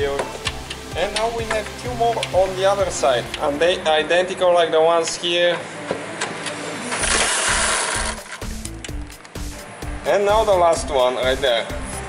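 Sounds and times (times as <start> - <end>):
pneumatic impact wrench bursts: 6.9 - 8.4.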